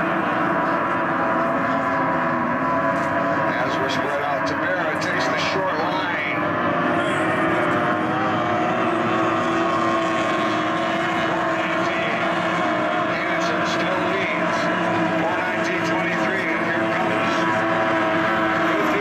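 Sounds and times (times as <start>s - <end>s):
racing boat engines droning: 0.0s - 19.0s.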